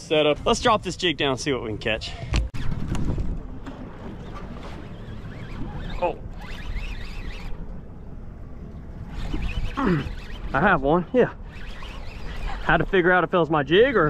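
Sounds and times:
wind rumbling on microphone: 0:02.3 - 0:14.0.

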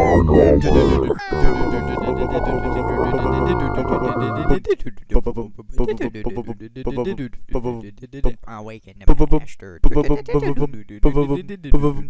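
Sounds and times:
a cappella voices imitating instruments: 0:00.0 - 0:12.0.

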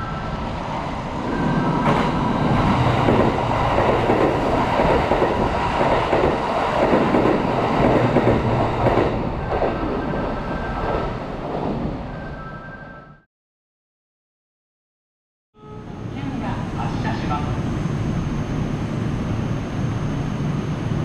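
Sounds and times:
train wheels rumbling on rails: 0:00.0 - 0:12.2.

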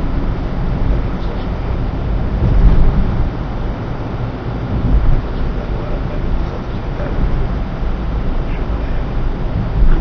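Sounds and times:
low rumble and hiss: 0:00.0 - 0:10.0
muffled conversation: 0:01.1 - 0:01.8, 0:04.8 - 0:07.6, 0:08.3 - 0:09.3.

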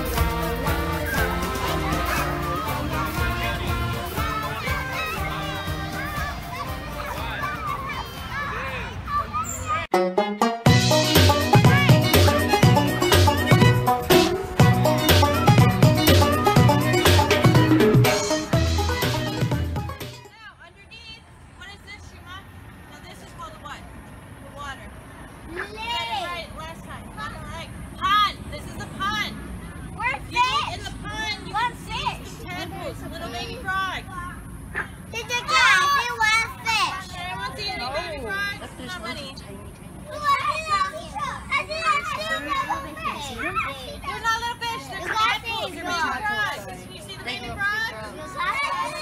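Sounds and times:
children talking and calling out: 0:00.0 - 0:10.1, 0:10.7 - 0:49.0.

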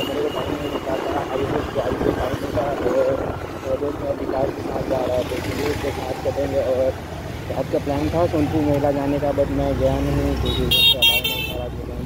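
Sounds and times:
person talking indistinctly: 0:00.0 - 0:12.0
wind buffeting microphone: 0:00.2 - 0:05.5.

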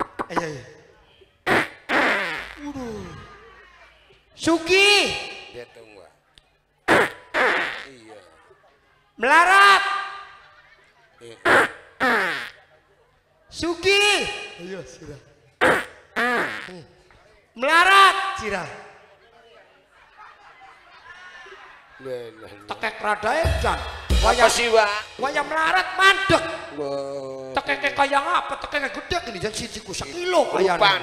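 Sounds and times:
raspberry-like vocal bursts: 0:00.0 - 0:00.6, 0:01.4 - 0:03.2, 0:06.9 - 0:08.0, 0:15.6 - 0:16.8
man shouting: 0:04.4 - 0:05.6, 0:09.2 - 0:10.2, 0:13.7 - 0:14.6, 0:17.6 - 0:18.8
man speaking into microphone: 0:22.0 - 0:31.0.

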